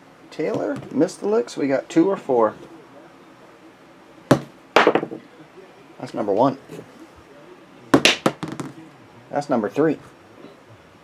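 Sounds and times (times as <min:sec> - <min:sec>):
die clattering on a table: 0:04.3 - 0:05.2, 0:08.0 - 0:08.8.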